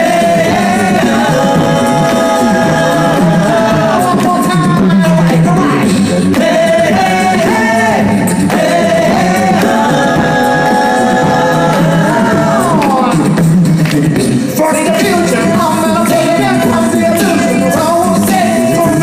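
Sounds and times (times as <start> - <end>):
low sung bass line: 0.0 - 19.0
male voices singing a cappella: 0.0 - 19.0.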